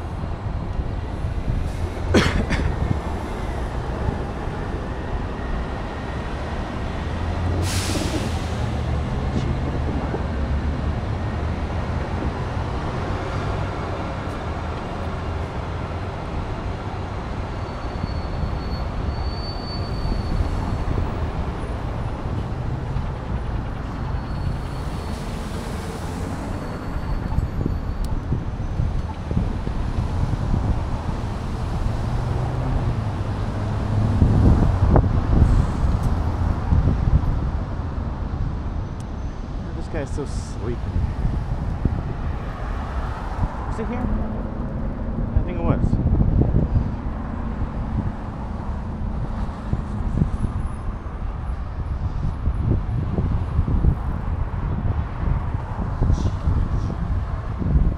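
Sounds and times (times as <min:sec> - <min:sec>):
wind rumble on microphone: 0:00.0 - 0:17.5, 0:19.8 - 0:57.9
city traffic noise: 0:00.0 - 0:57.9
faint high squeal: 0:17.5 - 0:20.9, 0:24.2 - 0:25.2, 0:26.5 - 0:28.1.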